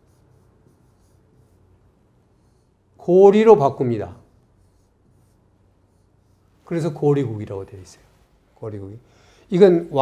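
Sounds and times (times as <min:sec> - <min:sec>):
stylus scratching and tapping screen: 0:00.0 - 0:03.2, 0:03.8 - 0:08.3.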